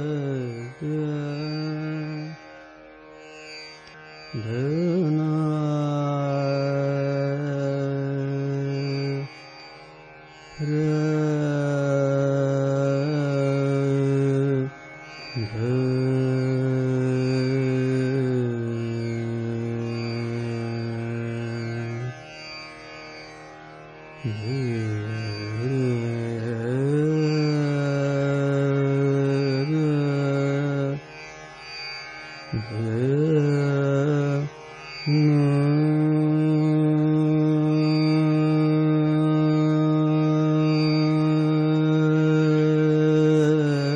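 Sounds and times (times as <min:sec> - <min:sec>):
man singing slow classical vocal: 0:00.0 - 0:02.6, 0:03.8 - 0:09.4, 0:10.6 - 0:22.3, 0:24.2 - 0:31.2, 0:32.5 - 0:43.9
tanpura drone: 0:00.0 - 0:43.9.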